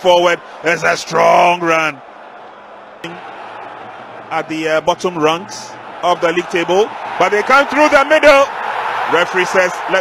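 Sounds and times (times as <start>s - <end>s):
stadium broadcast background noise: 0.0s - 10.0s.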